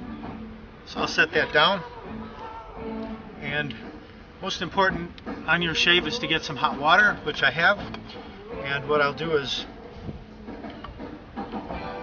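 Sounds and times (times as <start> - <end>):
faint background music: 0.0 - 12.0
wind rumbling on microphone: 9.8 - 11.0.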